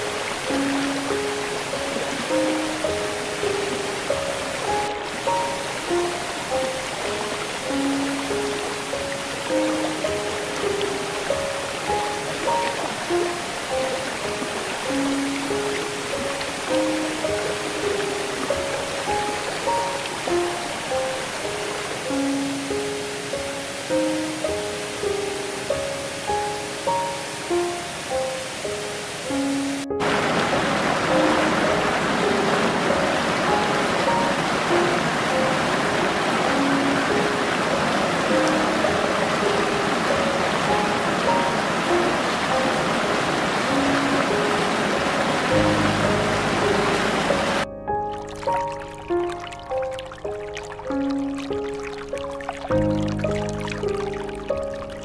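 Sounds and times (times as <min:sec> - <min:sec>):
flowing water rushing: 0:00.0 - 0:55.0
soft relaxation music: 0:00.0 - 0:55.0.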